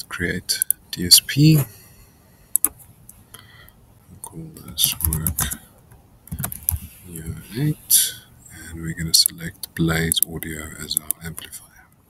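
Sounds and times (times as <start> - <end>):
computer mouse clicks: 2.5 - 2.8, 10.1 - 11.5.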